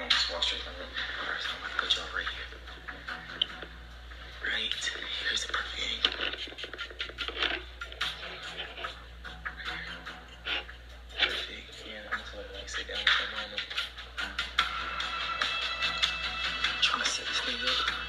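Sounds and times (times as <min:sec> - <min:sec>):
faint muffled voices: 0:00.0 - 0:02.7, 0:04.3 - 0:14.0.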